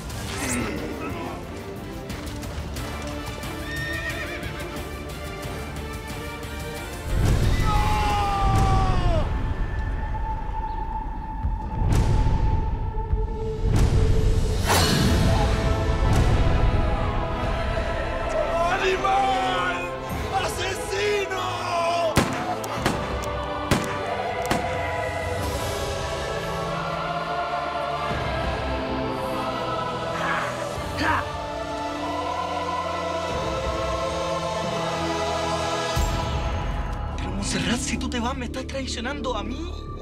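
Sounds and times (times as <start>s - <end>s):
background music: 0.0s - 40.0s
horse whinnying: 3.6s - 4.6s
gunshots: 22.2s - 24.7s.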